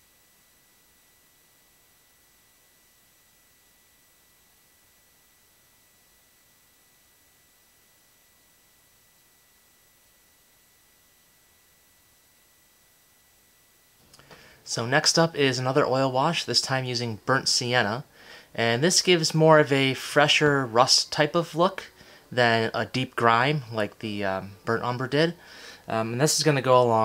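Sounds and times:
faint steady hiss: 0.0 - 27.0
thin high-pitched whine: 0.0 - 27.0.

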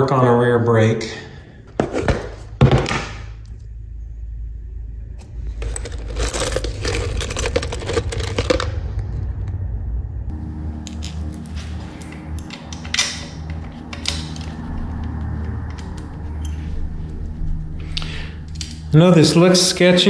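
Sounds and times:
metal hardware rattling in plastic tub: 5.6 - 8.7.

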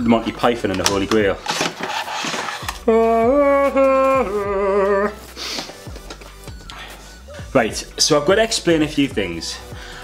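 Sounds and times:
packaging rustle: 0.8 - 2.9.

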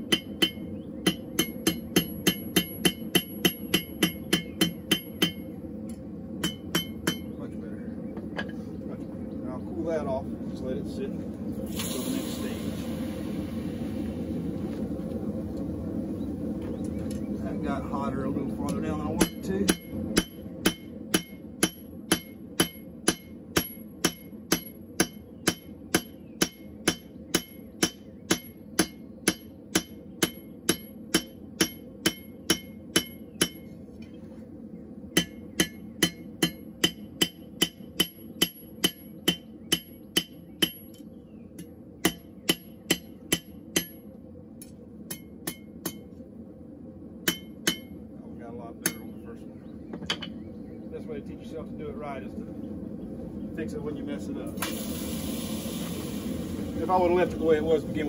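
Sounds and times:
hammer ringing on anvil: 0.1 - 5.4, 6.4 - 7.4, 19.2 - 33.7, 47.3 - 48.0.

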